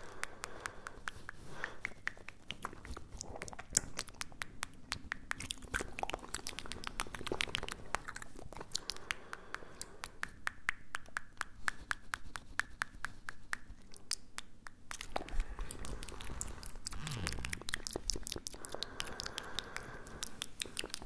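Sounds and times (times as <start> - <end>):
tongue and lip clicks: 0.0 - 21.0.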